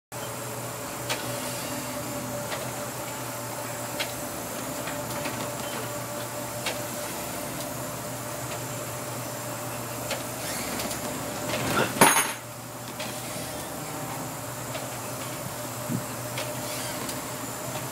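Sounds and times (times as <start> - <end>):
boat engines droning: 0.2 - 17.9
thin steady whine: 0.2 - 17.9.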